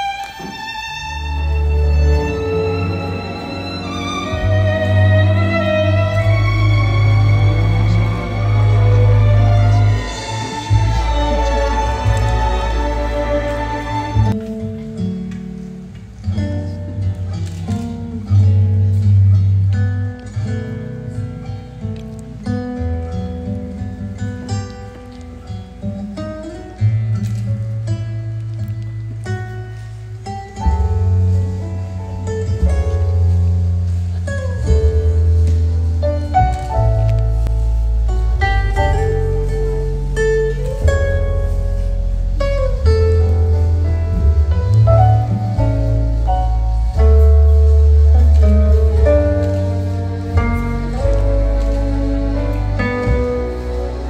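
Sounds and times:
plucked-string notes: 0.0s - 54.0s
low bass line: 0.6s - 24.4s, 30.6s - 54.0s.

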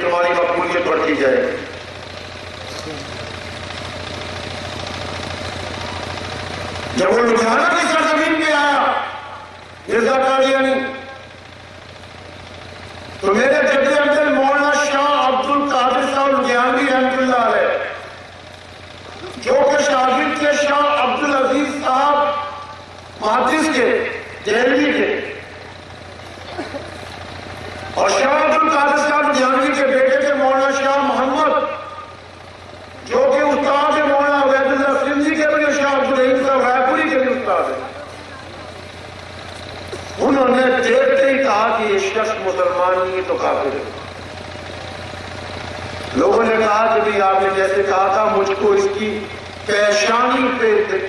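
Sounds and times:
loudspeaker hiss: 0.0s - 1.8s, 6.9s - 11.3s, 13.2s - 18.3s, 19.1s - 25.7s, 27.6s - 32.2s, 33.0s - 38.8s, 40.0s - 44.2s, 46.1s - 51.0s.

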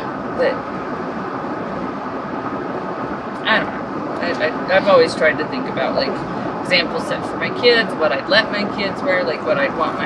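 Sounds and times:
road noise inside vehicle: 0.0s - 10.0s.

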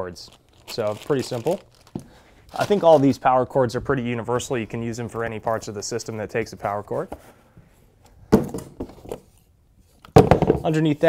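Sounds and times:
cardboard packaging handled: 0.3s - 3.2s
cardboard thunk: 8.3s - 9.0s, 10.2s - 10.7s.

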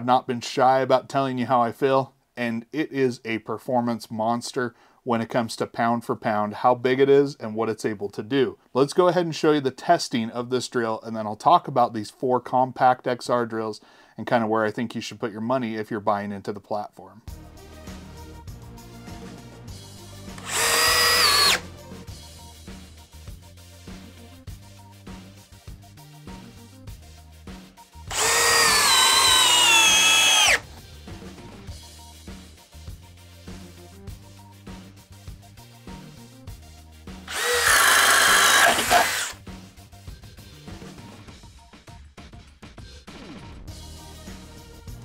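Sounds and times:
background music: 17.2s - 45.0s
cordless drill driving screw: 20.4s - 21.6s, 28.1s - 30.6s, 37.3s - 39.4s.

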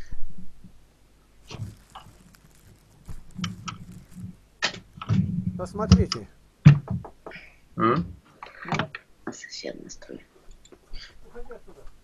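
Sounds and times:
low murmur: 1.4s - 6.3s, 7.4s - 10.2s.

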